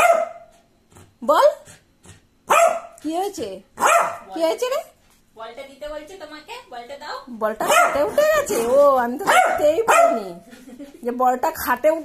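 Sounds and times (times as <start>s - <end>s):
small dog barking: 0.0s - 0.5s, 2.5s - 3.0s, 3.8s - 4.3s, 7.6s - 10.4s.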